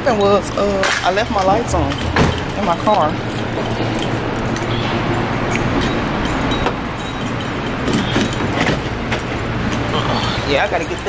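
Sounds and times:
keys jangling: 0.0s - 11.0s.

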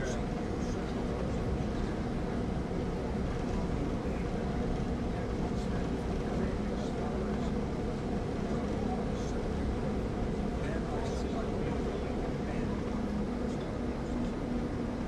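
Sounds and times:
bus engine drone: 0.0s - 15.0s
faint passenger talk: 0.0s - 15.0s.

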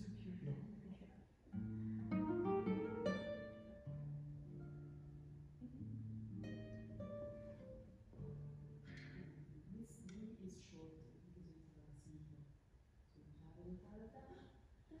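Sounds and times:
classical guitar playing: 1.5s - 9.6s.

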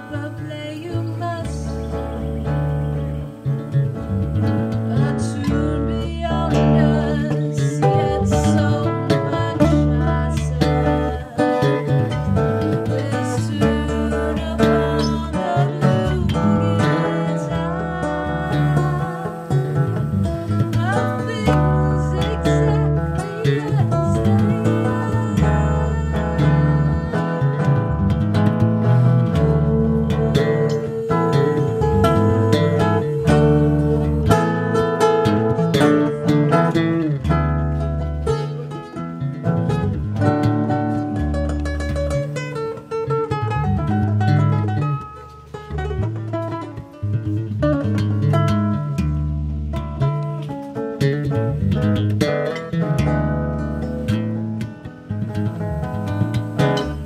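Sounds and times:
acoustic guitar: 0.0s - 57.0s
electric bass line: 0.0s - 57.0s.

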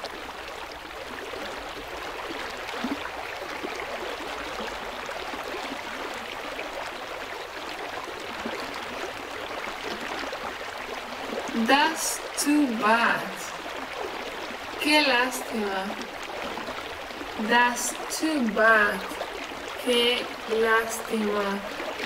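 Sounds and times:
stream water flowing: 0.0s - 22.0s.

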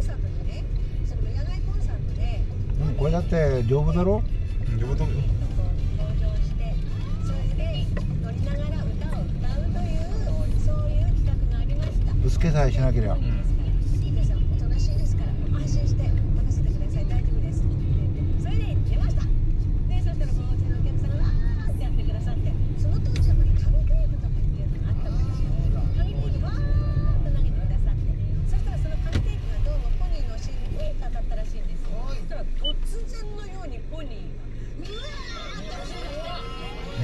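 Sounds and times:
car engine and tyres rumbling: 0.0s - 37.0s.

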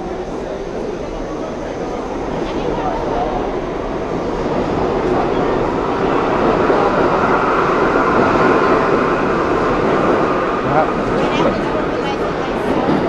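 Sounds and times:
subway train rumble: 0.0s - 13.0s.

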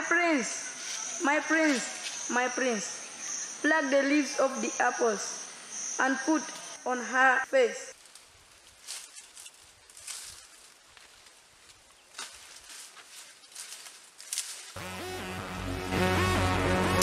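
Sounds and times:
palm fronds rustling: 0.6s - 2.4s, 7.9s - 14.8s
music with low bass: 14.8s - 17.0s.

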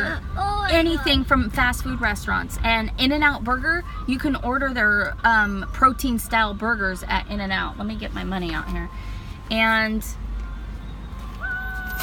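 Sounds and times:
car engine idling: 0.0s - 12.0s
high-pitched tone: 5.1s - 12.0s.

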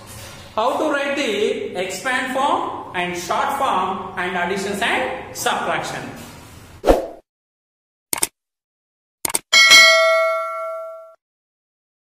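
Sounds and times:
bell chime: 9.6s - 11.2s.

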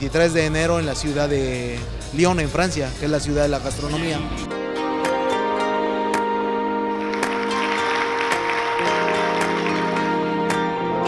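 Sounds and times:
instrumental music with held notes: 3.8s - 11.0s
audience applauding: 6.9s - 10.7s.

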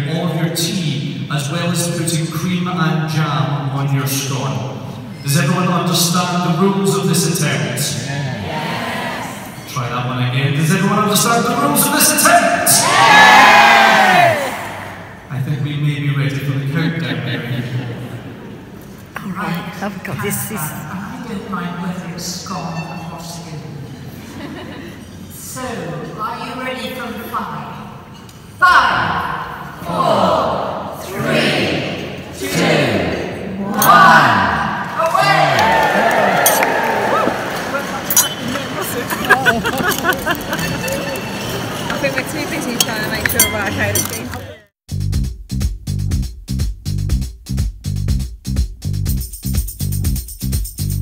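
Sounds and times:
crowd shouting in unison: 8.2s - 9.6s, 12.7s - 15.1s, 28.6s - 38.8s
crowd talking: 10.7s - 22.2s, 32.3s - 44.7s
crockery clinking: 36.4s - 36.8s, 38.0s - 44.5s.

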